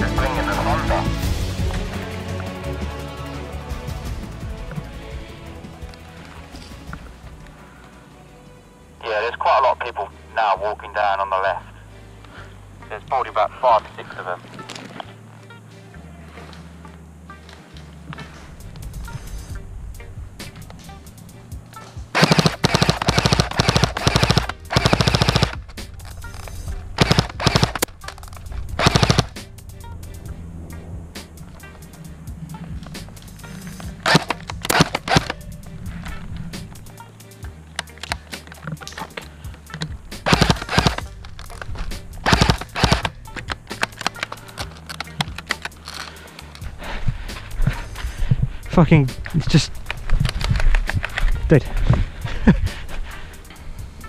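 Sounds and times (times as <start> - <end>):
background music: 0.0 - 54.0
airsoft rifle full-auto bursts: 22.1 - 25.7, 27.0 - 28.2, 28.8 - 29.4, 34.0 - 35.4, 40.2 - 41.1, 42.2 - 43.2.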